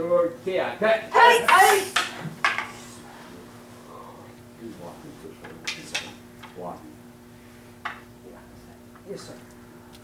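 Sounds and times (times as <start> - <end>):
low room hum: 0.0 - 10.0
wooden swords clacking: 1.2 - 2.7.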